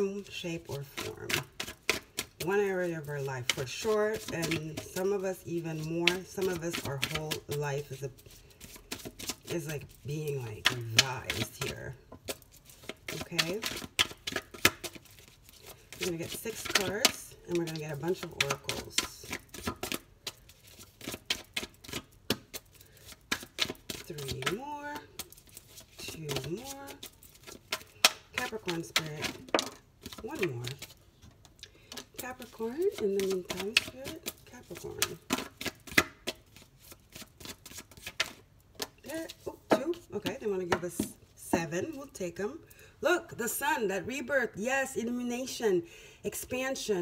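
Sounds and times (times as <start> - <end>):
cards shuffling and dealing: 0.0 - 41.2.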